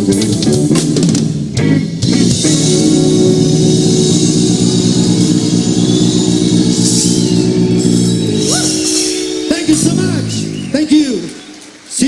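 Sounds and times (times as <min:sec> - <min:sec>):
fast drumming and cymbals: 0:00.0 - 0:10.6
electric guitar: 0:00.0 - 0:10.8
bass guitar: 0:00.0 - 0:10.9.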